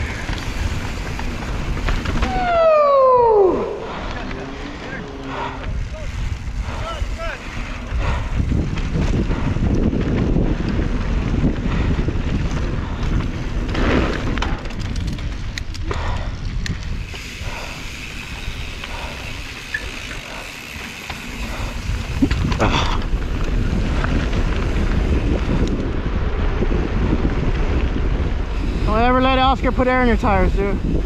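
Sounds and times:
bike rattling over bumps: 0.0 - 31.0
bike tyres rumbling on dirt: 0.0 - 31.0
wind buffeting microphone: 0.0 - 31.0.

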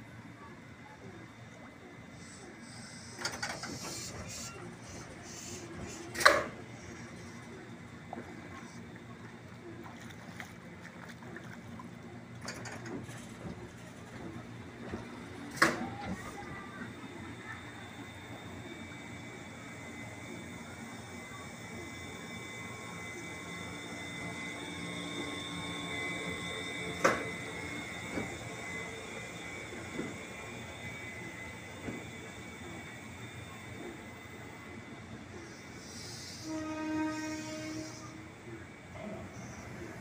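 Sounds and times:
electric train running rumble: 0.0 - 40.0
sharp clicks of train: 2.4 - 8.2, 12.3 - 18.7, 23.8 - 34.8
train horn note: 36.3 - 38.4.

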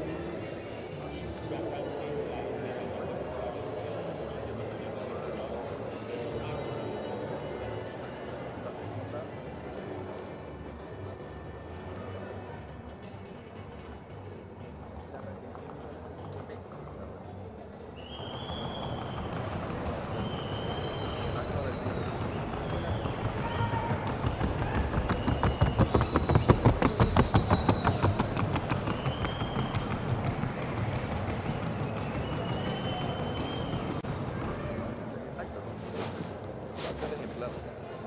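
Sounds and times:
horse hooves on hard track: 18.6 - 34.0.

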